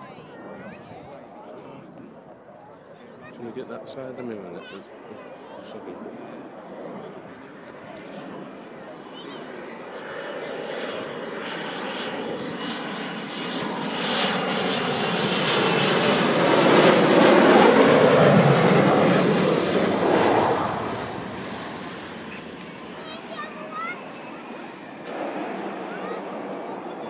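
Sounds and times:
jet passing low: 0.0 - 27.0.

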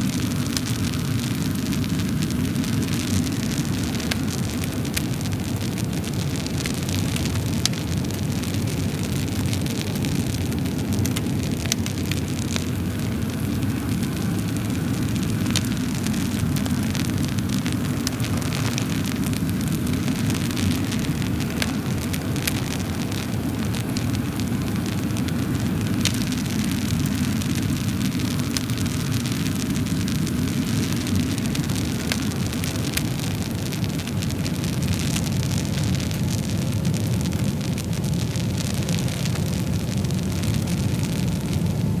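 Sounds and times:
fire crackles and pops: 0.0 - 42.0
rumble of wood fire flame: 0.0 - 42.0.

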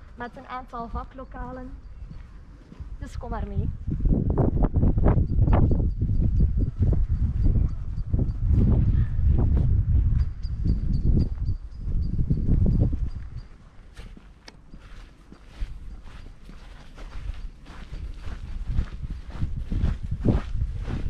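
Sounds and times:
wind rumble on microphone: 0.0 - 21.0
footsteps on artificial turf: 11.4 - 21.0.

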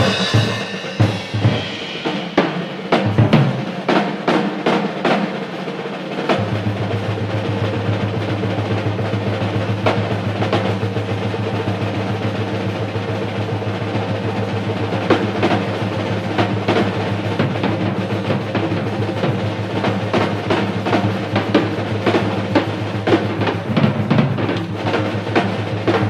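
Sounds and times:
cymbal accents: 0.0 - 4.5
drum rolls on snare and toms: 0.0 - 26.0.

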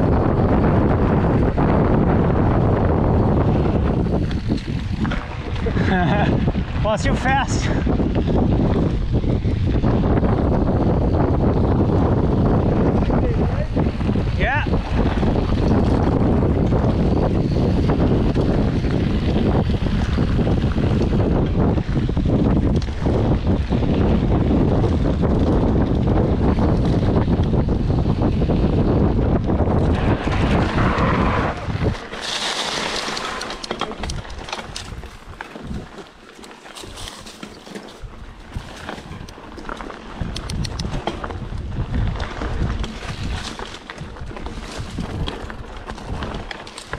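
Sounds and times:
bike rattle: 0.0 - 46.9
bike tyres rumbling on gravel: 0.0 - 46.9
wind rushing over microphone: 0.0 - 46.9.

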